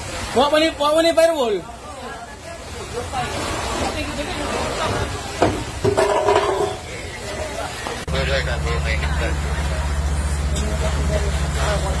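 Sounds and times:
people talking: 0.3 - 5.8, 6.7 - 12.0
fire truck engine humming: 7.1 - 12.0.

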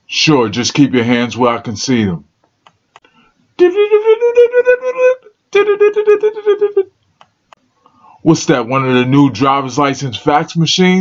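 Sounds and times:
buzzy electronic tones: 8.2 - 10.1.

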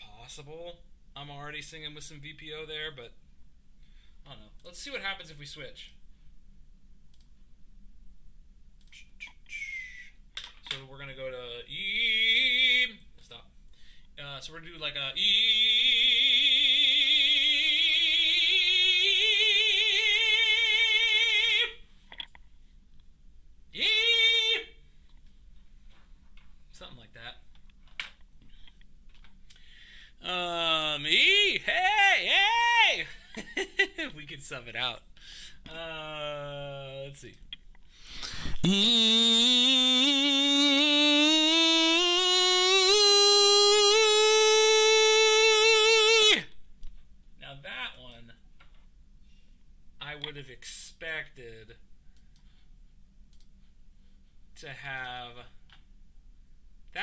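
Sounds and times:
quick breath: 13.7 - 14.2, 29.5 - 30.2, 35.2 - 35.6, 37.9 - 38.7
tenor singing with vibrato: 38.4 - 46.5.

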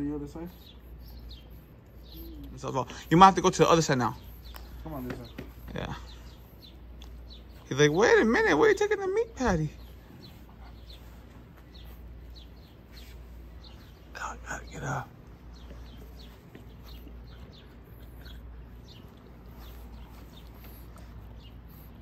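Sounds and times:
faint bird chirps: 0.0 - 22.0
low steady hum: 0.0 - 22.0.

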